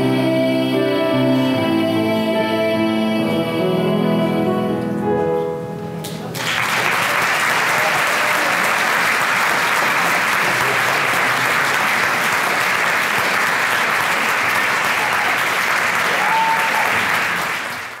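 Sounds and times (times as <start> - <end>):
audience applauding: 6.2 - 18.0.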